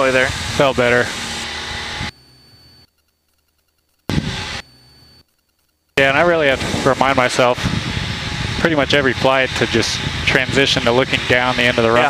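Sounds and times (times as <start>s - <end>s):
aircraft engine and airflow hiss: 0.0s - 2.1s, 6.0s - 12.0s.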